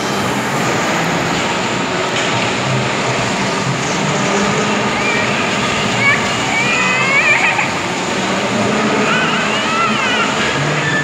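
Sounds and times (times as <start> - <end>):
bumper cars whirring: 0.0 - 11.0.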